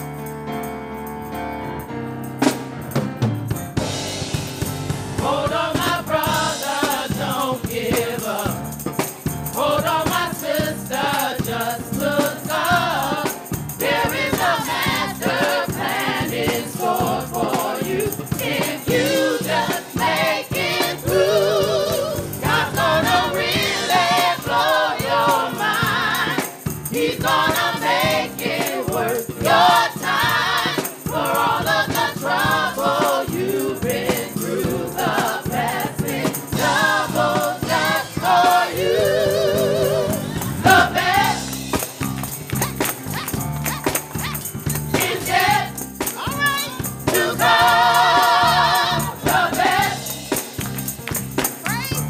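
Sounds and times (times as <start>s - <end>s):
instrumental accompaniment: 0.0s - 52.0s
gospel choir singing: 3.8s - 51.4s.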